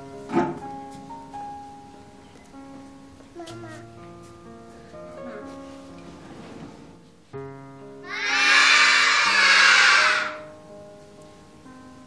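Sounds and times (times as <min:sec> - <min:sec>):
soft piano-like music: 0:00.0 - 0:12.0
children cheering and shouting: 0:08.0 - 0:10.5.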